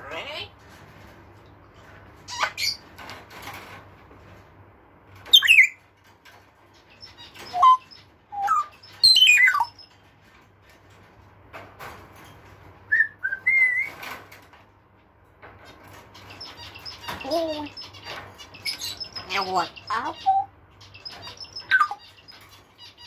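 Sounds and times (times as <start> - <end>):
parrot whistling: 12.9 - 13.9.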